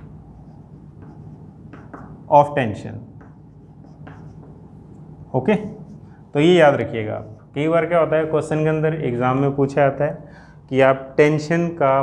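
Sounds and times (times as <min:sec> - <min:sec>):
chalk writing on chalkboard: 0:00.0 - 0:02.3, 0:03.1 - 0:05.0, 0:05.6 - 0:07.7.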